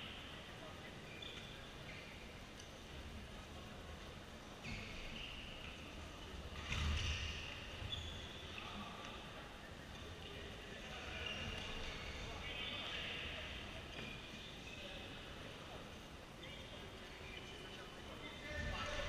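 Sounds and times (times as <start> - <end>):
voices echoing in hall: 0.0 - 19.0.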